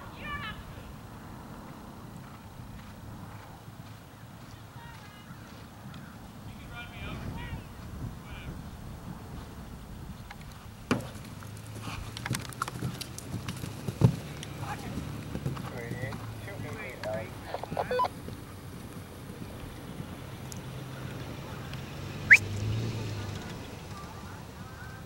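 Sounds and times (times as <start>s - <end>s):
faint voices talking: 14.5s - 18.3s, 19.3s - 25.0s.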